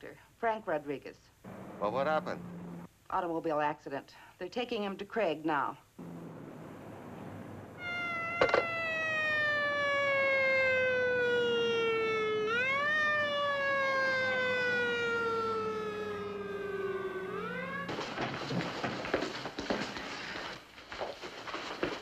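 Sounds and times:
ambulance siren wailing: 6.0 - 18.6
sharp knock: 8.4 - 8.7.

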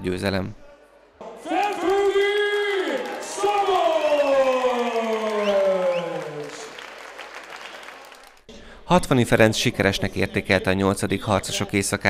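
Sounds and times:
crowd cheering and applause: 1.2 - 8.5.

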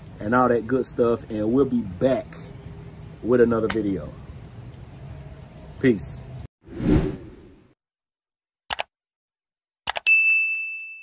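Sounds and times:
swoosh: 6.6 - 7.8
bright bell ding: 10.0 - 11.0.

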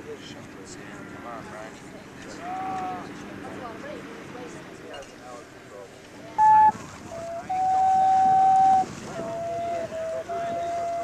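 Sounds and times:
wooden flute playing held notes: 6.4 - 11.0.

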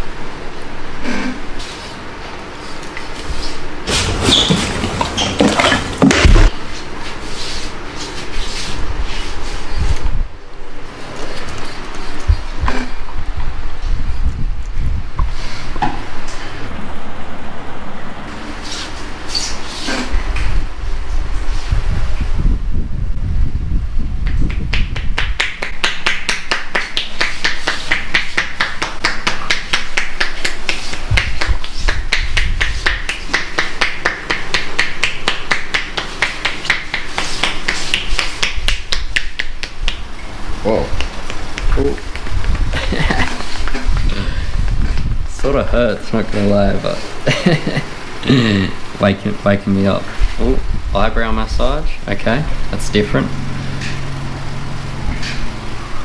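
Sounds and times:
hands rubbing scalp: 35.4 - 40.0.

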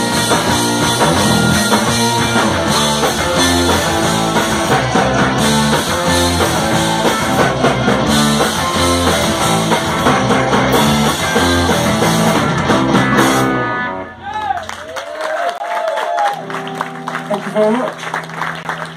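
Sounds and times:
live rock band playing: 0.0 - 14.4, 16.4 - 18.9.

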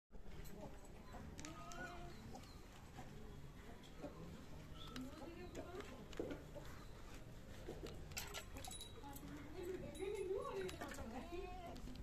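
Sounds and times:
farmyard background: 0.5 - 9.1.

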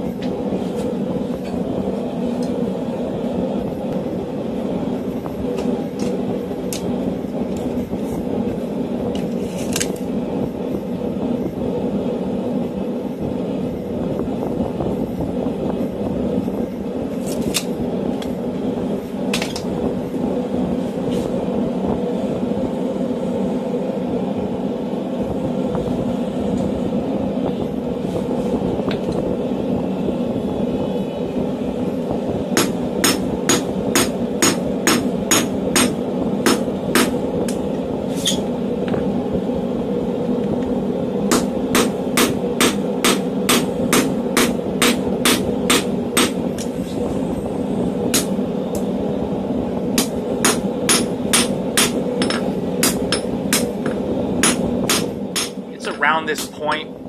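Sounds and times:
steady low rumble: 0.0 - 57.0
hammer striking steel on anvil: 32.6 - 37.1, 41.3 - 46.4, 50.0 - 56.9.

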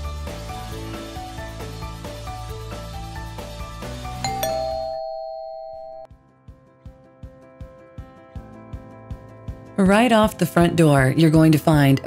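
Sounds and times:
background music: 0.0 - 12.0
two-tone doorbell chime: 4.2 - 6.1.

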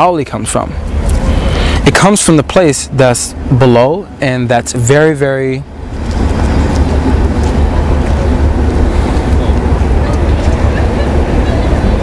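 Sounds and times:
wind buffeting microphone: 4.9 - 12.0.

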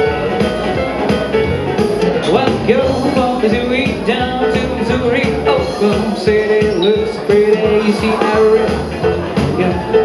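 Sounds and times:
drums and bass backing: 0.0 - 10.0
keyboard lead melody: 0.0 - 10.0.

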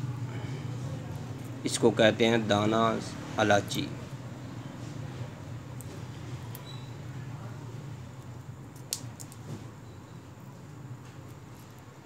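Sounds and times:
steady low hum: 0.0 - 12.0
pods cracking between fingers: 8.1 - 9.4.

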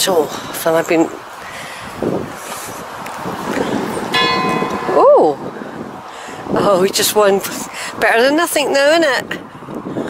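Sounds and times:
church bell strike: 4.1 - 5.4.

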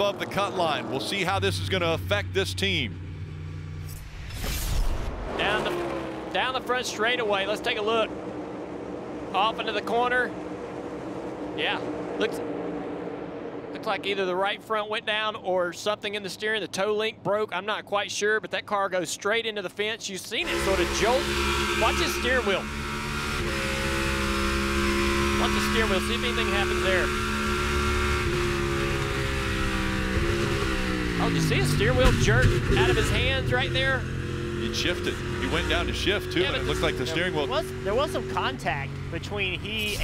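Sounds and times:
race cars rushing by: 0.0 - 15.2, 20.4 - 40.0
car engine drone: 0.0 - 16.5, 20.4 - 40.0.

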